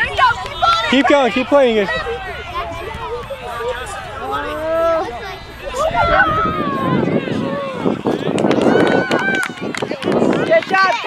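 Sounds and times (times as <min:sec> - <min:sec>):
people calling out: 0:00.0 - 0:09.7.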